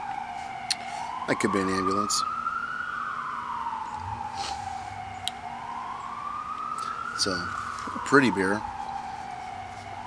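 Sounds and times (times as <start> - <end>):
emergency vehicle siren wailing: 0.0 - 10.0.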